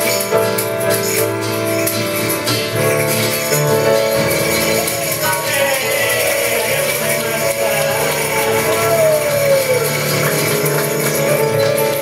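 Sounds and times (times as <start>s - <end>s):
acoustic guitar strumming: 0.0s - 12.0s
piano: 0.0s - 12.0s
tambourine jingles: 0.0s - 12.0s.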